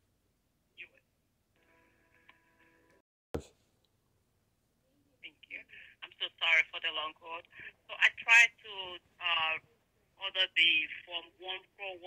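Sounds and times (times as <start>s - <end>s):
woman speaking over phone speaker: 5.2s - 12.0s.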